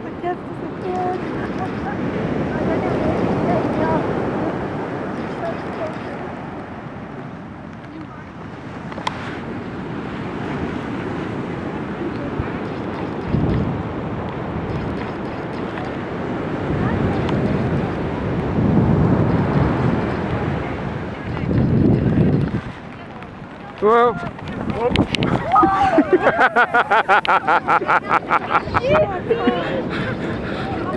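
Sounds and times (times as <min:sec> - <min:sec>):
surf washing: 0:00.0 - 0:30.9
wind buffeting microphone: 0:00.0 - 0:30.9.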